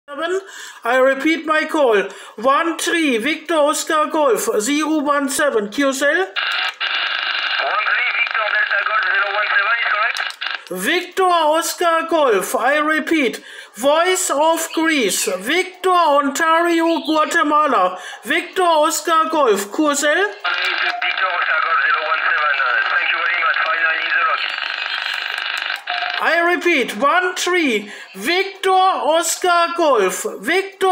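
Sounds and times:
radio hiss and static: 0:06.4 - 0:10.8, 0:20.4 - 0:26.2
narrow-band radio voice: 0:07.6 - 0:11.0, 0:20.3 - 0:26.6.

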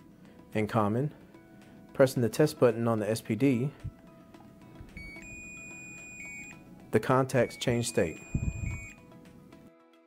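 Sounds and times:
high-pitched alarm tone: 0:05.0 - 0:06.6, 0:07.4 - 0:09.0.

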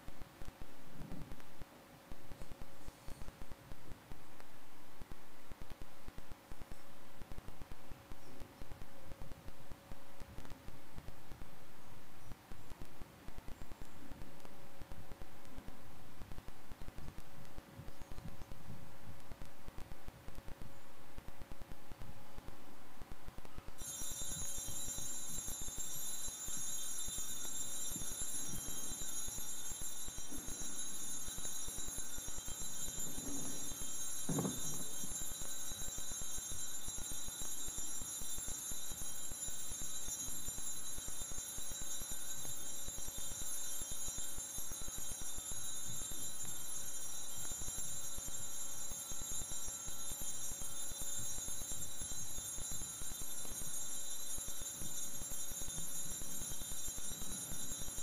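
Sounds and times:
altar bells jingling: 0:23.8 - 0:58.0.

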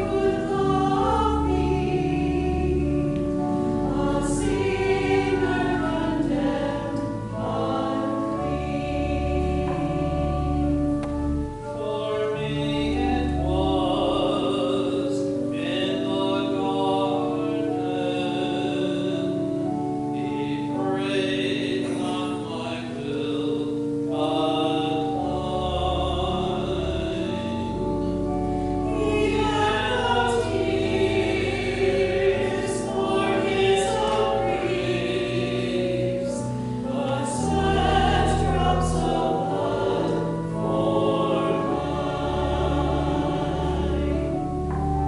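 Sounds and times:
choir singing in parts: 0:00.0 - 0:45.0
organ bass notes: 0:00.0 - 0:45.0.

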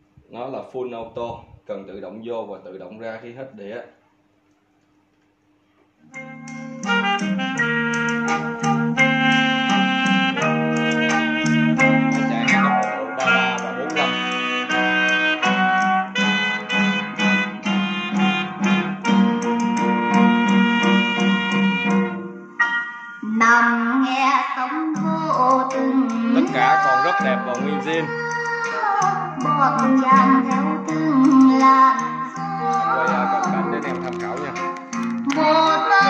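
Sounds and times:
instrumental music from a record: 0:06.0 - 0:36.0.

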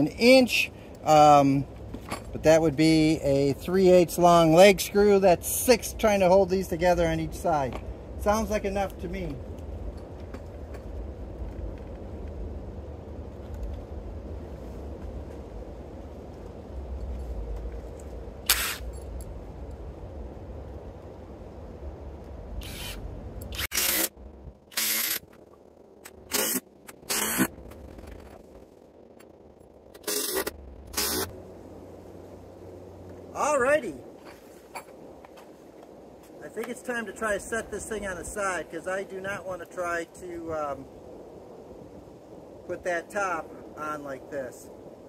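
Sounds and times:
low rumble: 0:00.0 - 0:42.8
cordless driver sinking screws: 0:22.6 - 0:24.1, 0:24.7 - 0:25.2, 0:26.3 - 0:27.5, 0:30.0 - 0:31.3.

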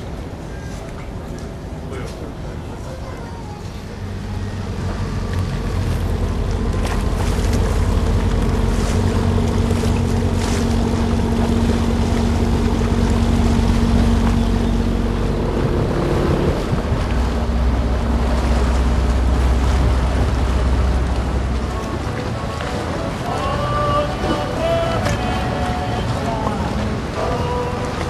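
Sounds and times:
engine humming: 0:00.0 - 0:28.0.

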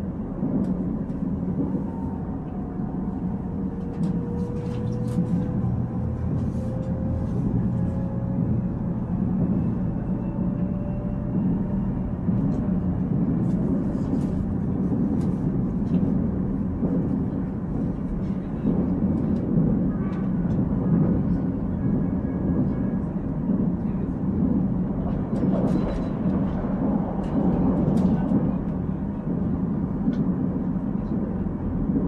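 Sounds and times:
train wheels rumbling on track: 0:00.0 - 0:32.0.

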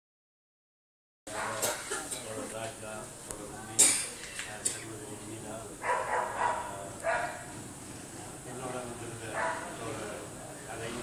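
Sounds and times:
dog barking: 0:01.3 - 0:01.7, 0:05.8 - 0:07.5, 0:09.3 - 0:09.8
murmur of people: 0:01.3 - 0:11.0.

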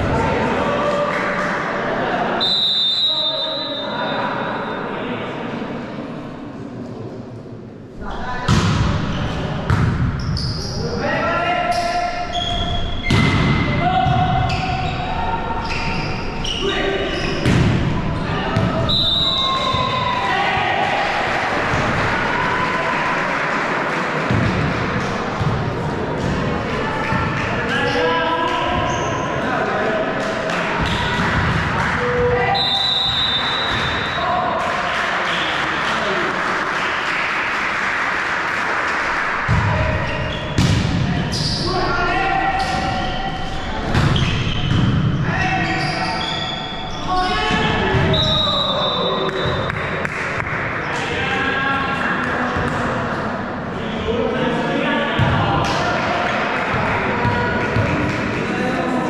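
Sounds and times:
volleyball hitting floor: 0:40.6 - 0:41.1.

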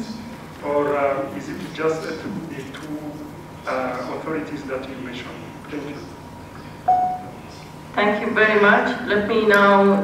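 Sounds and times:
short beep: 0:06.9 - 0:07.4.

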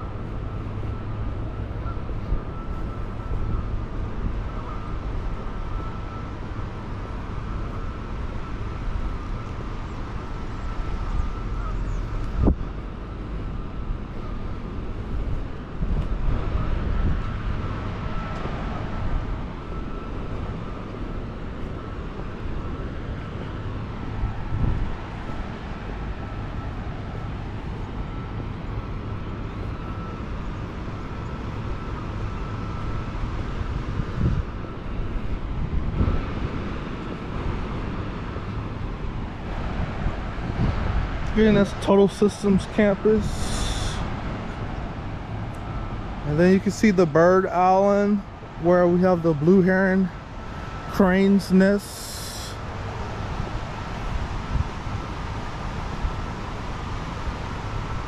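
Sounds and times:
wind rumble on microphone: 0:00.0 - 0:58.0.

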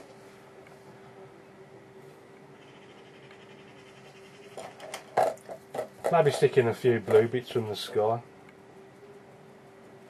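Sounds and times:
faint steady hum: 0:00.0 - 0:10.0
sharp taps and knocks: 0:04.5 - 0:07.3.

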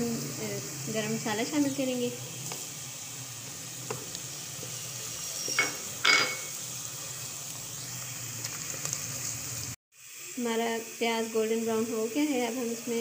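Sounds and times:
onions sizzling in oil: 0:00.0 - 0:13.0.

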